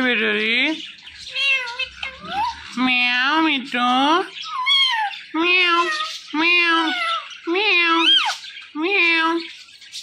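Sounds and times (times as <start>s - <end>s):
parrot mimicking cat meow: 1.3s - 2.7s, 4.5s - 8.4s.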